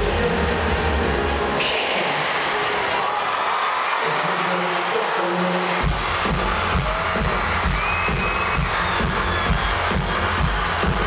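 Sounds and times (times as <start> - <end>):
pop dance song over loudspeakers: 0.0 - 11.0
crowd cheering: 0.7 - 11.0
heavy bass beat: 5.8 - 11.0.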